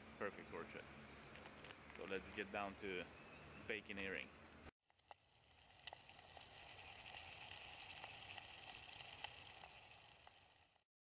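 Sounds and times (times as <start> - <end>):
eggs and meat sizzling in pot: 4.8 - 10.9.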